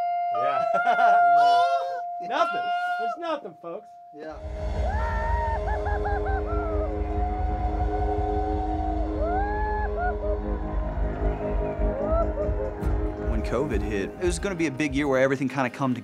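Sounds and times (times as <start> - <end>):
rock band playing: 4.4 - 15.4.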